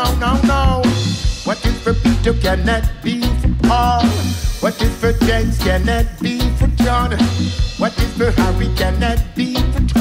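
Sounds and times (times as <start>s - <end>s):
bass line: 0.0s - 10.0s
electric guitar: 0.0s - 10.0s
keyboard: 0.0s - 10.0s
man singing: 0.0s - 10.0s.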